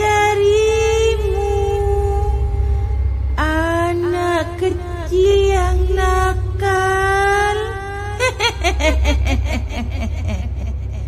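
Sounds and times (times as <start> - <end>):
steady low rumble: 0.0 - 11.0
woman wailing and cackling: 8.2 - 11.0.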